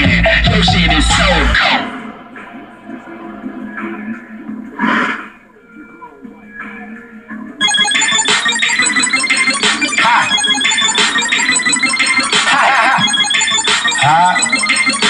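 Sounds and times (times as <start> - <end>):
electronic music with a beat: 0.0 - 2.0, 7.6 - 15.0.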